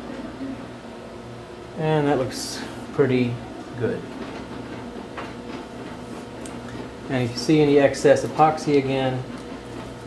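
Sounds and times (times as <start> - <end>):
room noise hum and hiss: 0.0 - 10.0.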